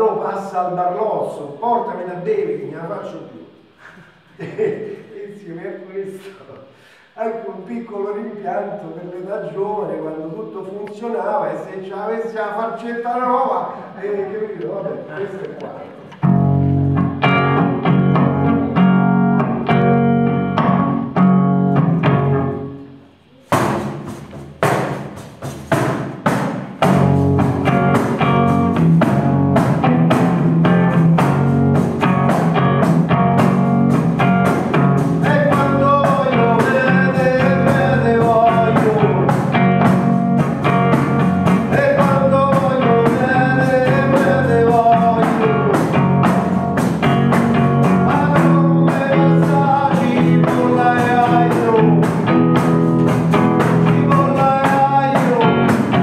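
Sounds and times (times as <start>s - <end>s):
electric guitar strumming chords: 15.5s - 25.2s, 26.5s - 56.0s
frame drum beats: 23.3s - 56.0s
person singing: 35.1s - 39.6s, 41.4s - 46.2s, 47.8s - 52.4s, 53.4s - 56.0s.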